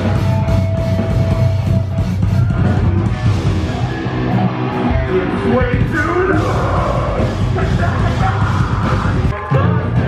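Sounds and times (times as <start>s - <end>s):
live heavy metal band: 0.0s - 10.0s.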